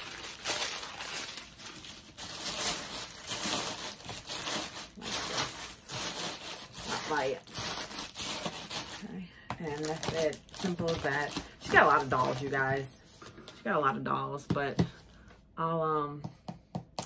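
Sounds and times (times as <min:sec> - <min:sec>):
tissue paper rustling and crinkling: 0:00.0 - 0:13.3.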